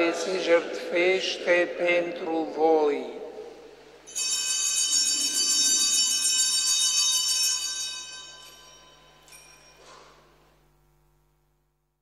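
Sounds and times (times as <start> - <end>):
handbells jingling: 4.1 - 10.6.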